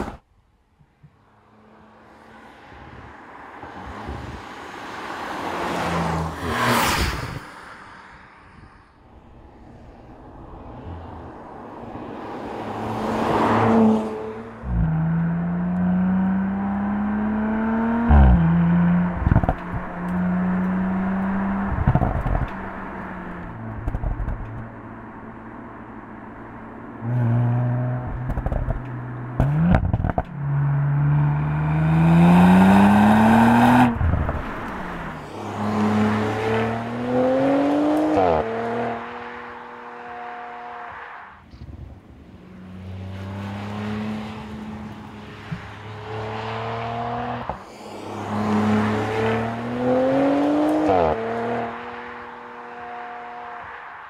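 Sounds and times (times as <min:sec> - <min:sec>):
car engine accelerating through gears: 0:14.7 - 0:24.6, 0:27.0 - 0:39.6, 0:42.6 - 0:52.3.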